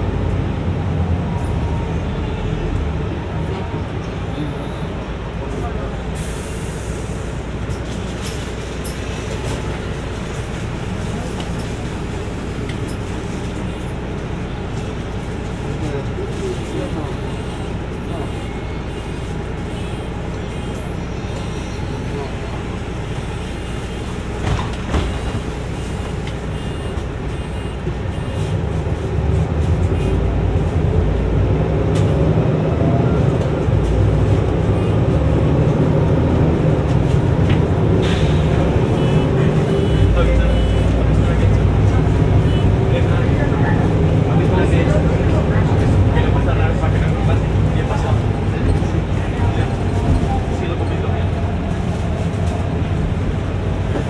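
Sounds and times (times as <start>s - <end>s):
bus accelerating: 0.0s - 54.0s
bus engine running: 0.0s - 54.0s.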